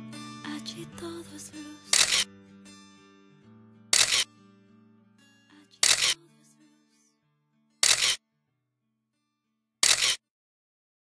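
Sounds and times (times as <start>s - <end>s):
camera shutter snapping: 1.9s - 2.3s, 4.0s - 4.3s, 5.8s - 6.2s, 7.8s - 8.2s, 9.8s - 10.2s.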